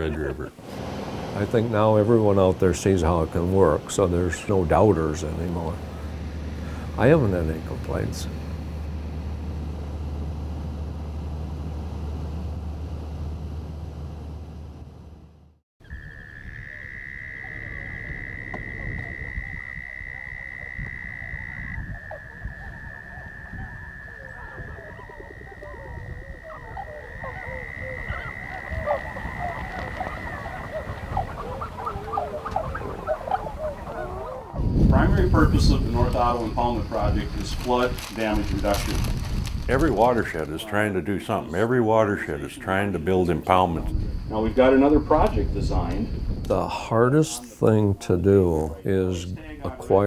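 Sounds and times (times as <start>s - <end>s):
small plane engine droning: 0.6s - 40.1s
frogs trilling: 15.8s - 47.7s
frogs chirping: 15.8s - 50.0s.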